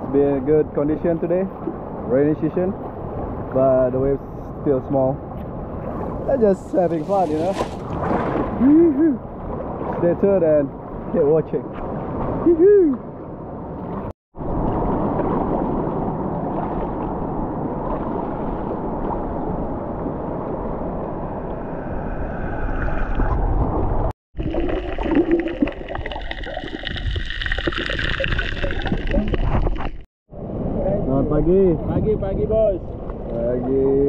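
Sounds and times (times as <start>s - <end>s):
water sloshing and splashing: 5.3s - 20.7s, 22.8s - 30.1s.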